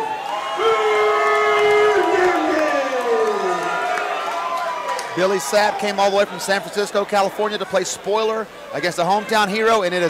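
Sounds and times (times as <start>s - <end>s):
crowd cheering: 0.0s - 8.1s.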